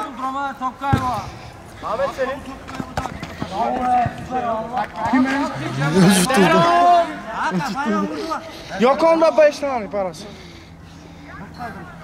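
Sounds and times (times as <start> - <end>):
men talking and calling out: 0.0 - 12.0
football being kicked: 0.9 - 1.2.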